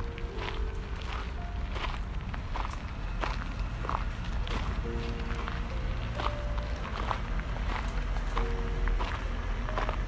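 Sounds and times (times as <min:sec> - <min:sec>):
footsteps crunching on gravel: 0:00.0 - 0:10.0
steady low rumble: 0:00.0 - 0:10.0.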